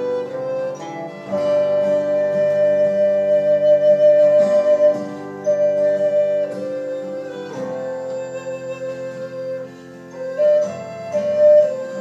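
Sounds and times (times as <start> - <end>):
acoustic guitar: 0.0 - 12.0
wooden flute melody: 0.0 - 12.0.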